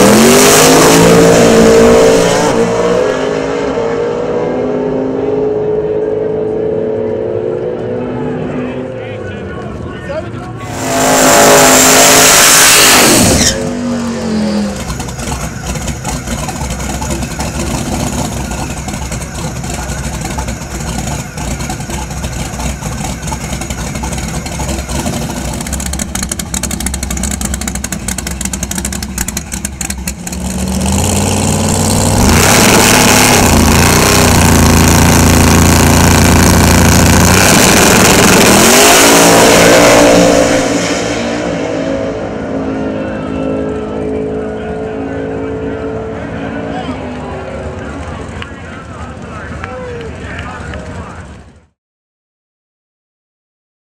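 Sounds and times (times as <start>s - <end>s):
engine revving: 0.0s - 9.2s, 10.6s - 51.7s
drag race car engines: 0.0s - 51.8s.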